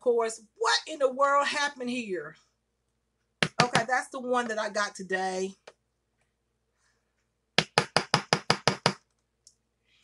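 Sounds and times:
sharp knocks on hard surface: 0:07.6 - 0:09.0.

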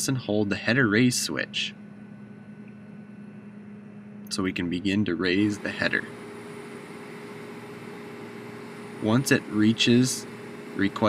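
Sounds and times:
combine engine hum: 0:00.0 - 0:11.0.

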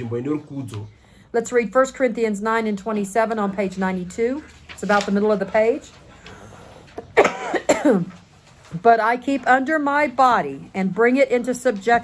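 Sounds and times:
woman clearing her throat: 0:07.0 - 0:08.2.

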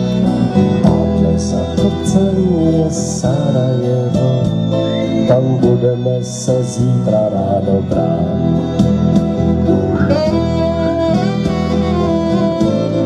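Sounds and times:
cajon drum beats: 0:00.0 - 0:04.9, 0:07.9 - 0:13.0
bending melodic lead line: 0:00.0 - 0:13.0
electric guitar and bass: 0:00.0 - 0:13.0
strummed acoustic guitar: 0:00.0 - 0:13.0.

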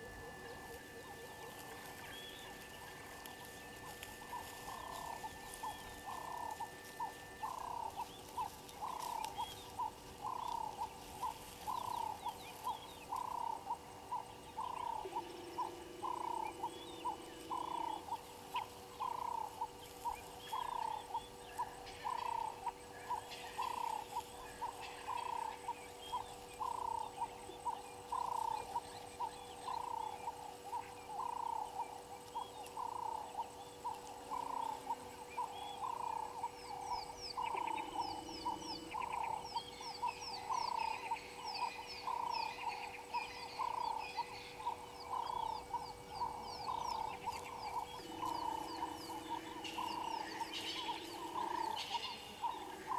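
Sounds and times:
faint bird chirps: 0:00.0 - 0:52.9
frog calling: 0:00.0 - 0:52.9.

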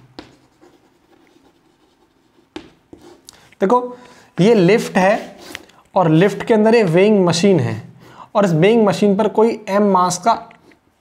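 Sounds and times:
chalk scratching on chalkboard: 0:00.0 - 0:03.3, 0:04.8 - 0:05.6.

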